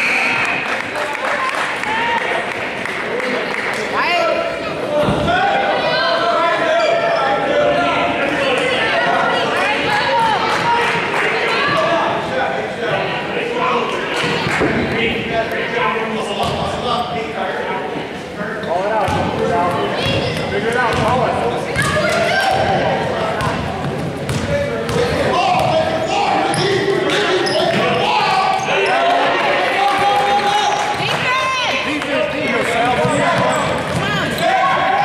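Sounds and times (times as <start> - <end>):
echoing voices: 0.0 - 35.0.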